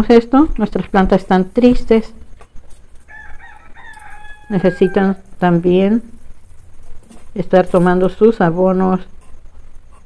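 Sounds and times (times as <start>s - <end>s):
rooster crowing: 3.0s - 5.9s.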